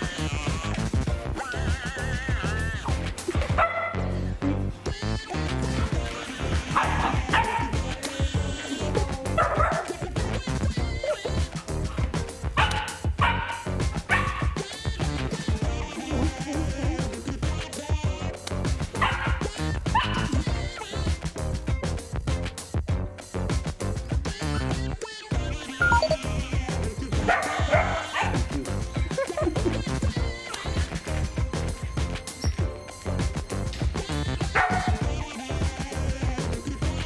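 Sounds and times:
background music with steady beat: 0.0 - 37.0
puppy yapping: 3.5 - 4.0, 6.7 - 7.8, 9.4 - 10.0, 12.6 - 14.6, 19.0 - 20.3, 27.3 - 28.5, 34.5 - 35.0.

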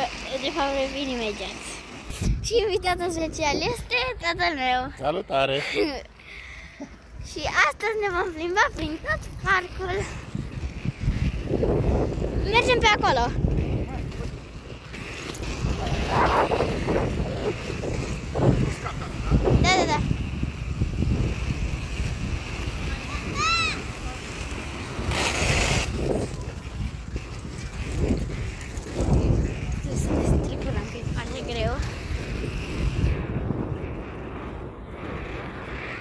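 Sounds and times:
wind buffeting microphone: 0.0 - 5.0, 7.0 - 36.0.

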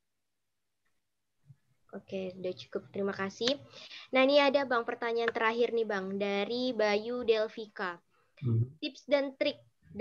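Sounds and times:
person speaking: 2.0 - 10.0.

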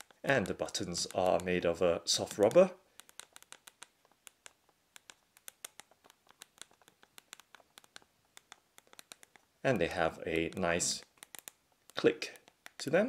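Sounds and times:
soft keyboard key clicks: 2.2 - 9.5, 10.3 - 12.8.

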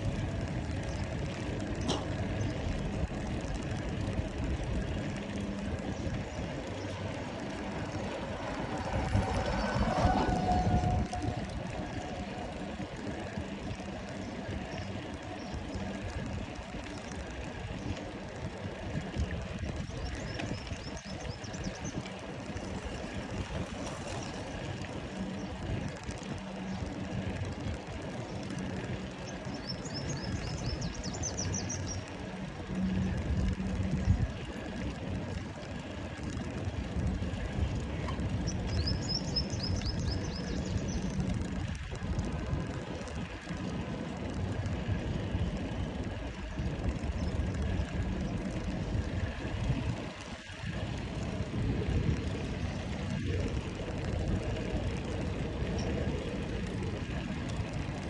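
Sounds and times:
tyres rolling over paving: 0.0 - 29.6
wind on microphone: 0.0 - 58.0.

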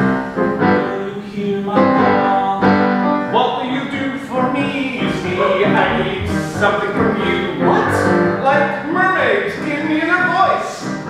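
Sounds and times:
piano accompaniment: 0.0 - 11.0
man singing: 0.7 - 10.9.

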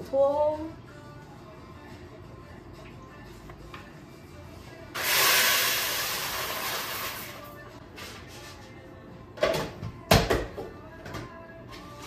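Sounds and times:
coffee beans pouring into grinder: 5.0 - 7.4.

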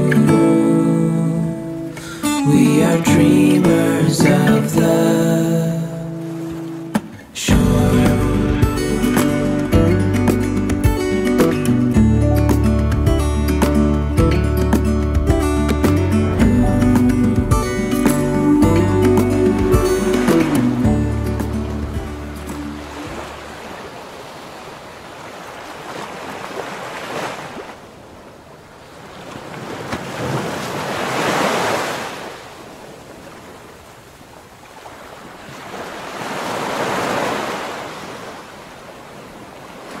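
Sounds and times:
small waves breaking on beach: 5.4 - 7.4, 21.4 - 40.0.

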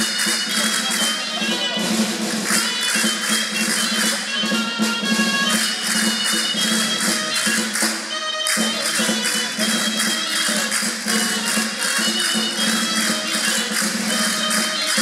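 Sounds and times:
folk melody over drone: 0.0 - 15.0
jingling percussion beat: 0.0 - 15.0.

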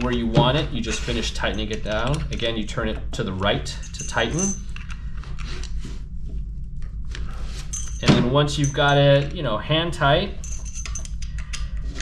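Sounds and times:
tool clicking and rubbing: 0.0 - 2.5
steady low hum: 0.0 - 12.0.

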